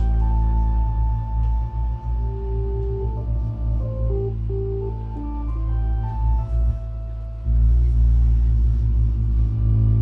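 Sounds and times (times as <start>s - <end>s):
low synthesizer bass drone: 0.0s - 10.0s
sustained organ-like tones: 0.0s - 10.0s.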